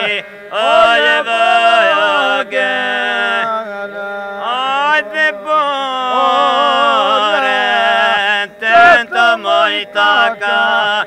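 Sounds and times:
low vocal drone: 0.0 - 11.0
polyphonic folk singing: 0.0 - 11.0.

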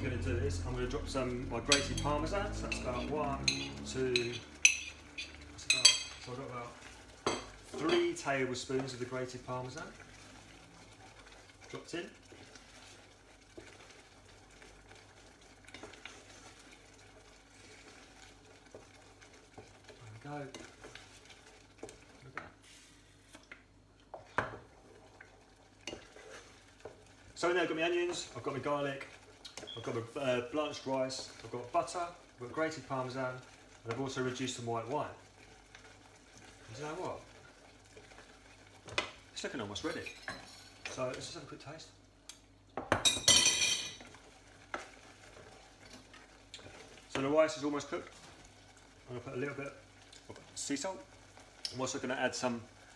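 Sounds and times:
spoon stirring in saucepan: 0.1 - 52.9
spoon scraping pan: 11.2 - 27.1.

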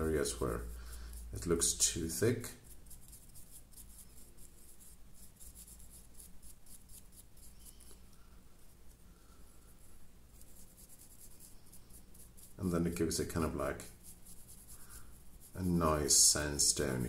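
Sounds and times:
brush scrubbing stonework: 0.0 - 8.0, 10.3 - 17.0
low steady hum: 0.0 - 17.0.

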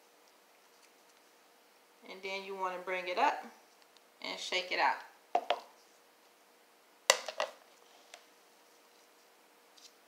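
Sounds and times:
plastic cup knocking: 5.4 - 5.7.

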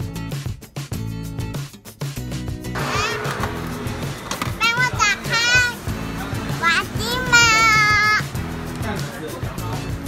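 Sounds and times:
background music: 0.0 - 10.0
child calling out excitedly: 6.6 - 8.3.

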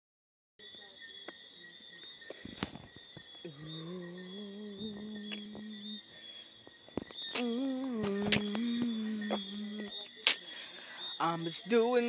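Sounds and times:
crickets trilling: 0.6 - 12.0
person humming a low note: 3.5 - 6.0, 7.4 - 9.9
faint clicks: 6.9 - 9.6.

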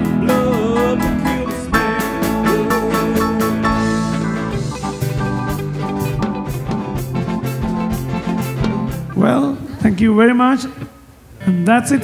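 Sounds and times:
drum kit beat: 0.0 - 9.4
bass guitar line: 0.0 - 9.7
guitar: 0.0 - 9.9.

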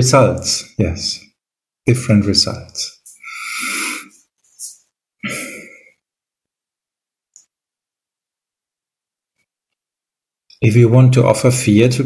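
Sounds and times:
man clearing his throat: 5.2 - 5.9.

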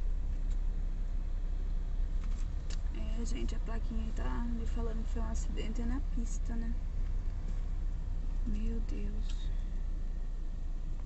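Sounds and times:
car interior rumble on highway: 0.0 - 11.0.

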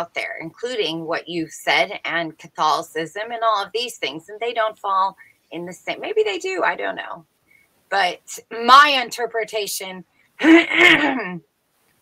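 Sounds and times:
person clearing throat: 10.4 - 11.4.

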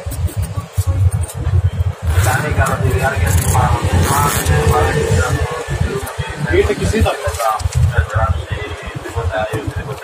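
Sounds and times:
indistinct voices: 0.0 - 10.0
microphone being jostled and rubbed: 0.0 - 10.0.

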